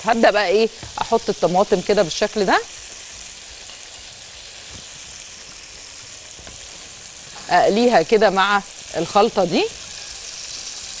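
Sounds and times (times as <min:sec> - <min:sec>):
tomato slices sizzling in oil: 0:00.0 - 0:11.0.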